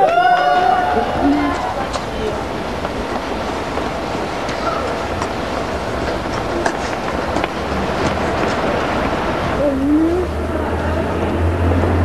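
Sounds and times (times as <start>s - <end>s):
vehicle rumble: 0.0s - 12.0s.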